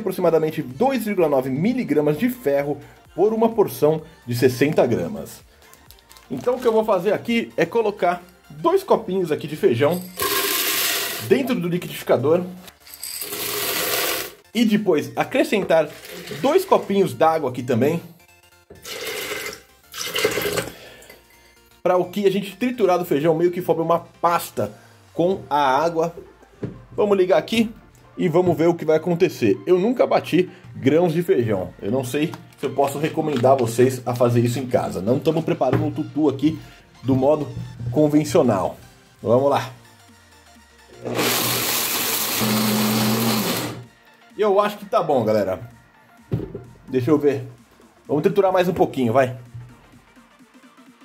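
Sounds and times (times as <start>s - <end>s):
blender grinding: 10.1s - 11.3s, 12.9s - 14.4s, 15.9s - 16.9s, 18.8s - 20.7s, 41.0s - 43.9s.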